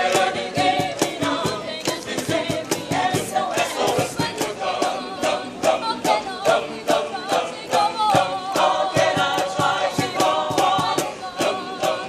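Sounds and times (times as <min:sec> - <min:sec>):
choir singing: 0:00.0 - 0:12.0
sharp rhythmic strikes: 0:00.0 - 0:12.0.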